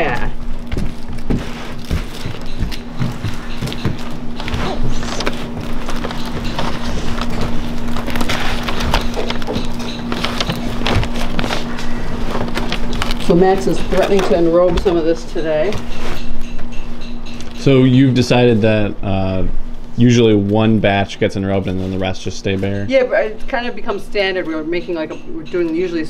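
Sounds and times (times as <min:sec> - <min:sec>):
steady low hum: 0:00.0 - 0:26.0
brittle candy crackling and snapping: 0:00.1 - 0:14.9.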